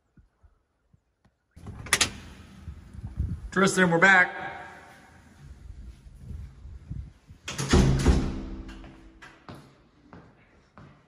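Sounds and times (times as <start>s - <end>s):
door latch clicking: 1.6s - 2.3s
low rustle of movement: 4.9s - 7.5s.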